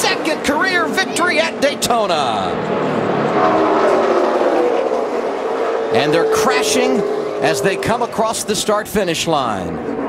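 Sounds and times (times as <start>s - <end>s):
race car engines passing: 0.0s - 10.0s.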